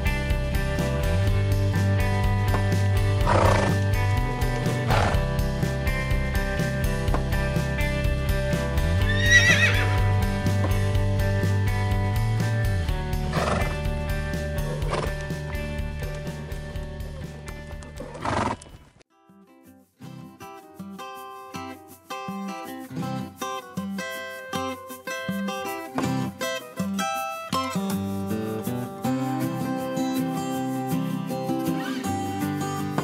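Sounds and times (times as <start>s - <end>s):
background music with steady beat: 0.0s - 18.5s
horse whinny: 3.2s - 3.8s, 9.0s - 10.1s, 13.3s - 13.8s, 18.0s - 18.7s.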